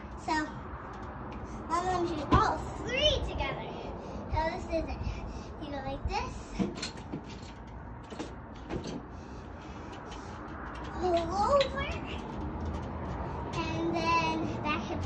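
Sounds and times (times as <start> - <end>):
outdoor background noise: 0.0 - 15.0.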